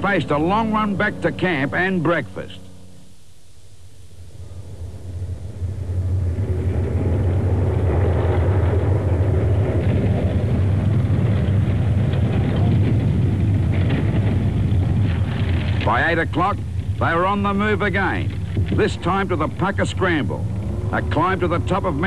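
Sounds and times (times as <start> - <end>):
tracked vehicle engine rumble: 0.0 - 3.1, 4.1 - 22.0.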